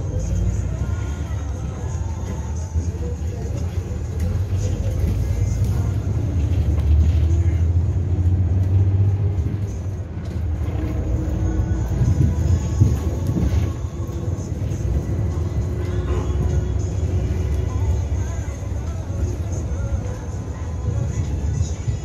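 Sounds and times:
bus engine and road rumble: 0.0 - 22.0.

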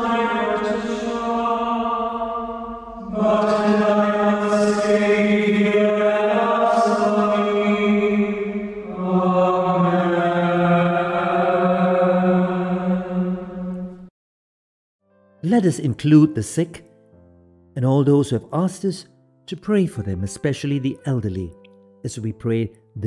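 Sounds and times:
slow chant with long held notes: 0.0 - 14.1.

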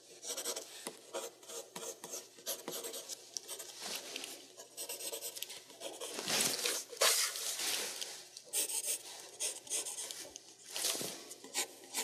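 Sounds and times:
pencil scratching on paper: 0.1 - 3.8, 4.6 - 7.4, 8.5 - 10.3, 11.4 - 12.0.

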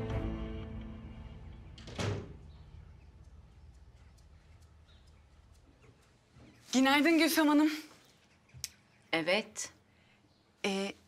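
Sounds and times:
door shutting thud: 1.8 - 2.5.

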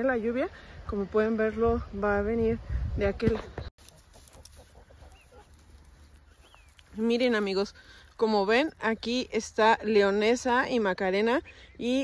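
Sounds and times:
low wind rumble: 0.0 - 3.7
high bird chirps: 6.2 - 6.9.

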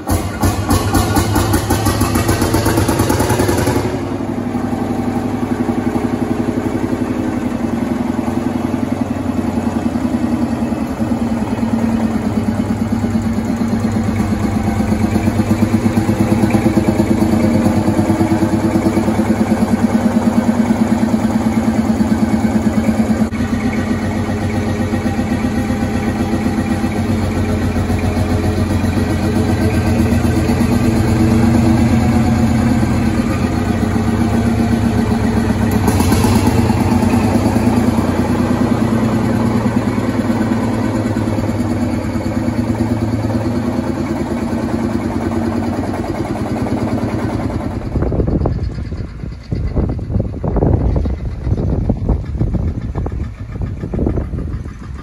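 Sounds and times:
tractor diesel engine idling: 0.0 - 55.0.

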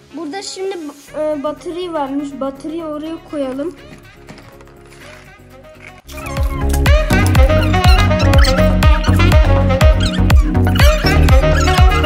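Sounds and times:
electronic dance music: 6.3 - 12.0.

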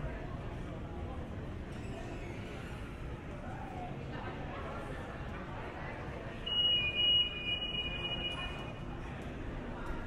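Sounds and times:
city street ambience: 0.0 - 10.0.

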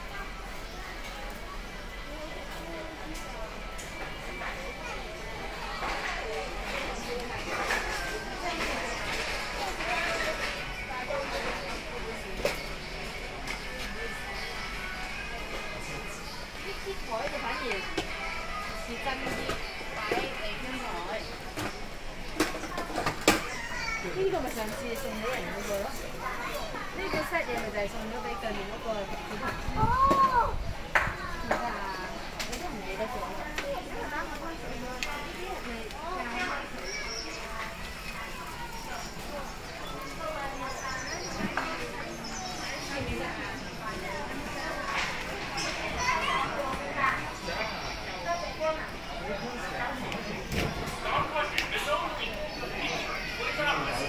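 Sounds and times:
children's voices: 0.0 - 54.0
shoppers chattering: 0.0 - 54.0.

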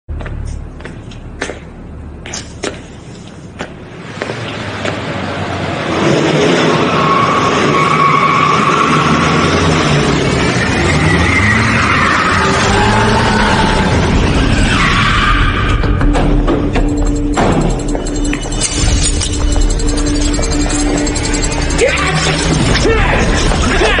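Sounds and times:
car engine revving: 5.1 - 24.0
tyres squealing: 6.7 - 16.1, 16.7 - 24.0.

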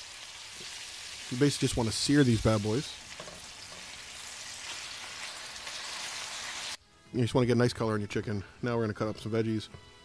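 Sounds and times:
chicken sizzling in frying pan: 0.0 - 6.8.

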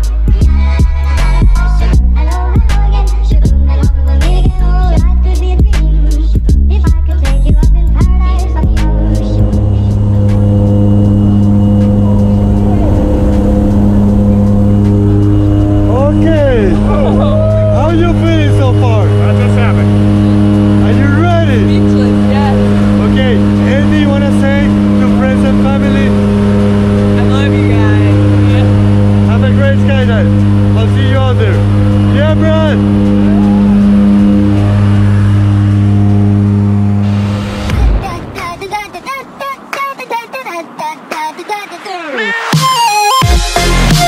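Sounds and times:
plane engine droning: 0.0 - 44.0
people's voices: 11.6 - 35.7.

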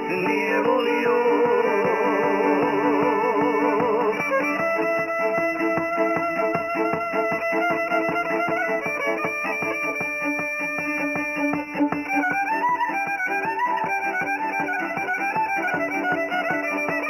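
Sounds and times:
plucked-string accompaniment: 0.0 - 17.0
violin melody: 0.0 - 17.0.

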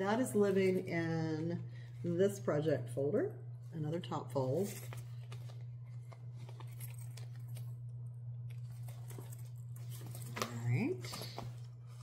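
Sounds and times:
steady low hum: 0.0 - 12.0
fabric folder rustling: 4.4 - 7.9, 8.6 - 12.0.

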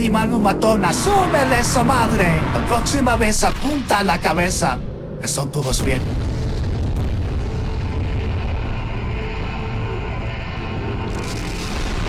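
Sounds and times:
deep explosion rumble: 0.0 - 12.0.

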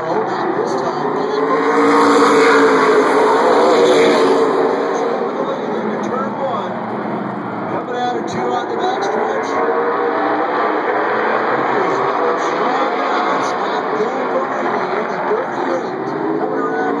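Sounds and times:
race car engines revving: 0.0 - 17.0.

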